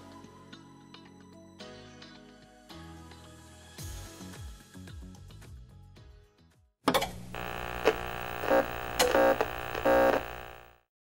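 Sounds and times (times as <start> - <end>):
steady buzzing drone: 7.1 - 10.9
short glitchy pulses: 7.2 - 10.8.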